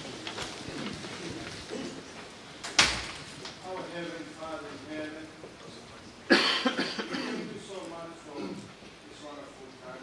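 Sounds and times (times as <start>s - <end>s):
person coughing: 6.3s - 7.6s.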